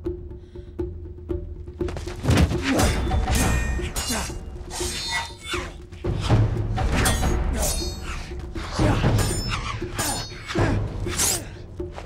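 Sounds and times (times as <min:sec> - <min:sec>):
film score with steady beat: 0:00.0 - 0:12.0
blades clashing: 0:02.6 - 0:12.0.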